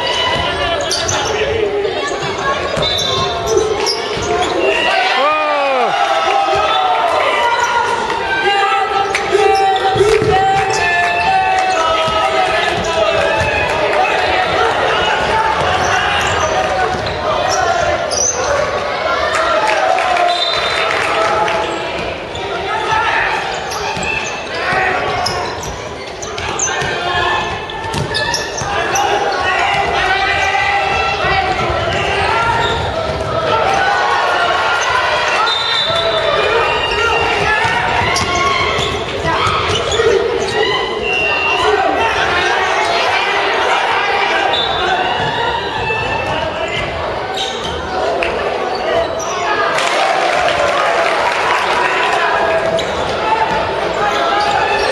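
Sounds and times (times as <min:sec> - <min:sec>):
players shouting: 0:00.0 - 0:54.9
basketball bouncing on wooden court: 0:27.8 - 0:28.7, 0:37.4 - 0:40.0.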